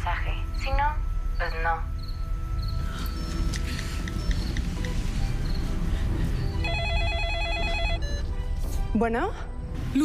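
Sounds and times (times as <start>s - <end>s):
mobile phone ringtone trill: 6.6s - 8.3s.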